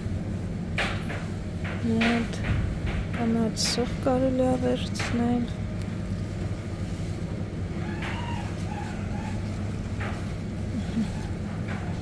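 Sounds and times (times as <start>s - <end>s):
refrigeration and ventilation hum: 0.0s - 12.0s.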